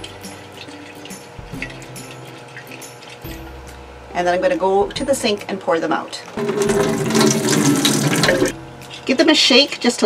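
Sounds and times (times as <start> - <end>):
water sloshing in a glass jar: 0.0 - 3.6, 6.4 - 8.6
soft background music: 0.0 - 10.0.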